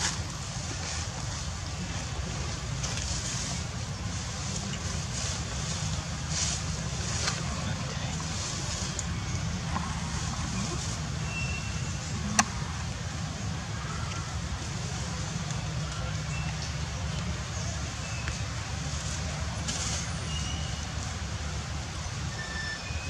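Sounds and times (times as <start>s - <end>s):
steady hiss: 0.0s - 23.0s.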